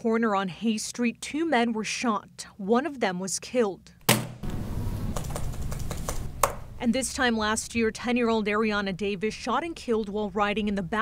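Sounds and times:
low room hum: 3.8 - 11.0.

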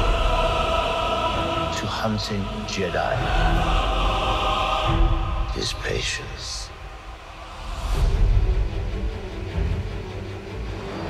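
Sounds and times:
people speaking dialogue: 1.5 - 7.0.

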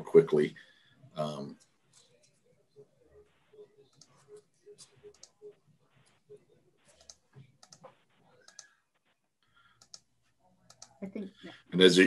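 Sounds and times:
computer mouse clicking: 5.1 - 5.4, 6.9 - 8.8, 9.7 - 11.0.

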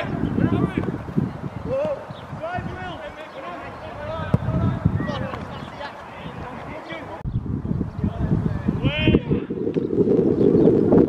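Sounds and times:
footballers shouting: 0.0 - 7.2
ball being kicked: 0.6 - 1.0, 4.2 - 4.6.

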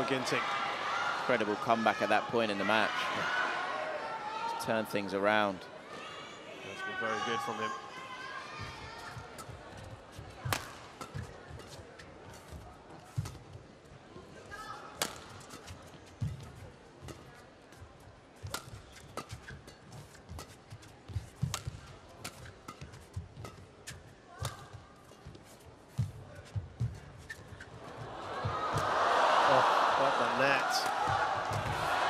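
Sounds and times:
rackets striking shuttlecock: 10.4 - 11.7, 15.0 - 15.7, 18.4 - 20.6, 21.4 - 24.8.

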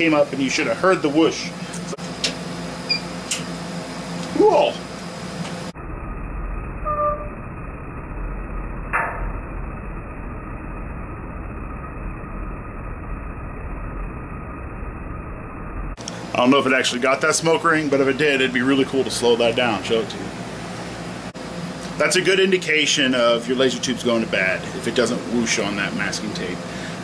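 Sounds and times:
steady low hum: 0.0 - 27.0
laser pulse pop: 5.8 - 16.0.

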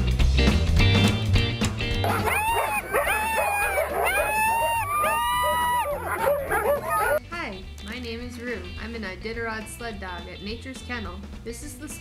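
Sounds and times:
music: 0.0 - 12.0
sled dogs howling and yipping: 2.0 - 7.2.

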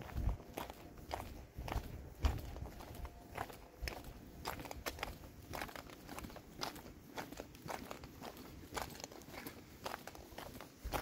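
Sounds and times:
footsteps on concrete: 0.0 - 11.0.

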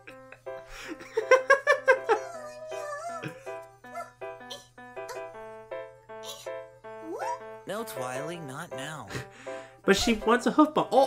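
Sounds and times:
gentle cartoon music: 0.0 - 11.0
high squeaky voice: 6.2 - 7.4.

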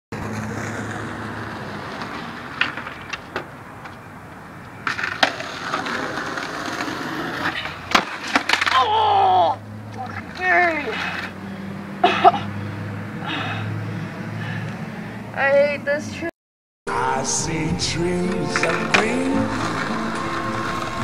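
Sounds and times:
skateboard wheels rolling on asphalt: 0.1 - 9.0, 9.6 - 12.0, 18.6 - 21.0
skateboard clacking on ground: 0.2 - 8.9, 9.9 - 11.4
skater yelling: 8.7 - 9.6.

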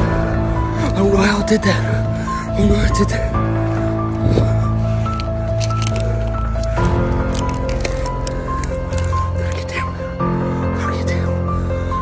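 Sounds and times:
music with long held notes: 0.0 - 12.0.

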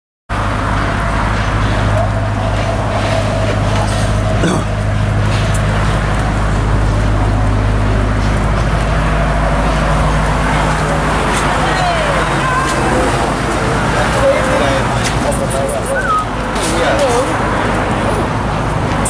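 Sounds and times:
loud vehicle engine drone: 0.3 - 19.0
road traffic: 0.3 - 19.0.

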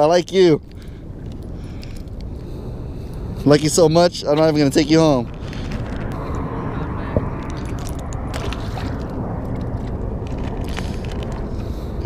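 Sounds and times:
wind rumble on microphone: 0.0 - 12.0.

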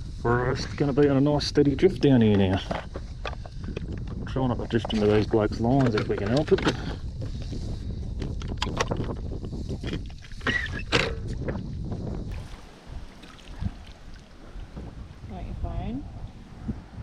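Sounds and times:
wind rumbling on microphone: 0.0 - 17.0
knocks and clatters of gear: 2.2 - 7.5, 8.2 - 11.6.

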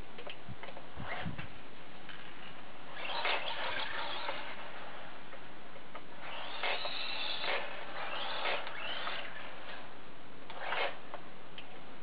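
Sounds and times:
toy truck motor whirring: 2.9 - 5.2, 6.2 - 9.9, 10.5 - 11.1.

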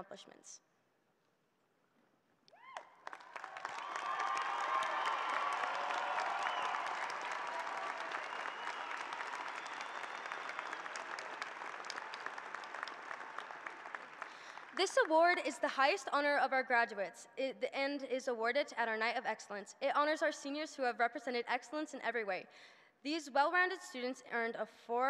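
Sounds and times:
arena audience applauding: 2.6 - 15.1.

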